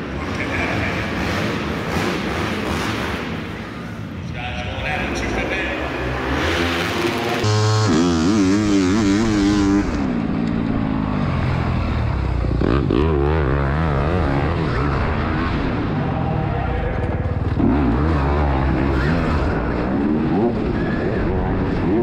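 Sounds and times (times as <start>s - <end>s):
dirt bike engines revving: 0.0s - 22.0s.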